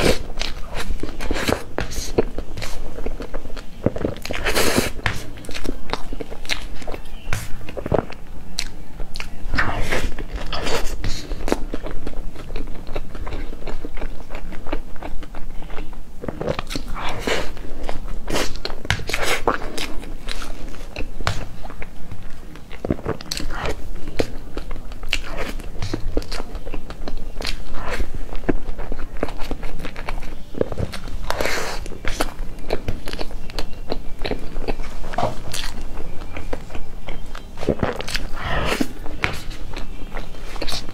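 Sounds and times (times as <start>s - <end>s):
close chewing and mouth sounds: 0.0s - 40.9s.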